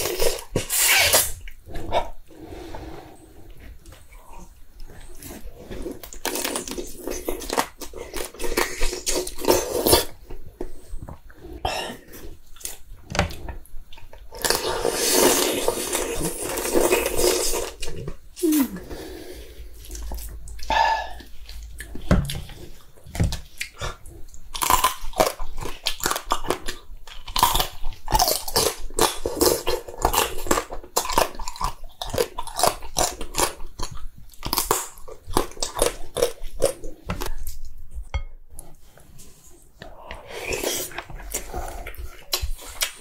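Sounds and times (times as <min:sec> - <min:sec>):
chewing and crunching crab shell: 0:22.7 - 0:37.6.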